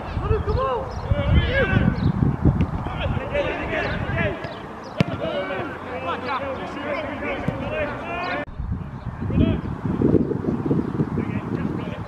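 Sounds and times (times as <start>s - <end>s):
men shouting: 0.4s - 2.0s, 2.8s - 8.5s.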